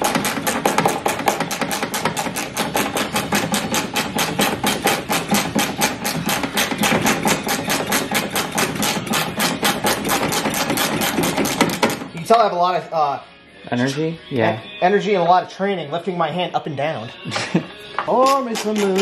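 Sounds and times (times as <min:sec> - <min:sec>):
hand scrubbing mud off metal: 0:18.2 - 0:19.0.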